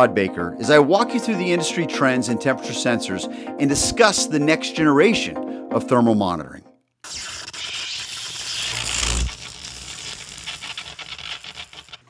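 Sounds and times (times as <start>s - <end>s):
fast crackling clicks: 6.9s - 12.0s.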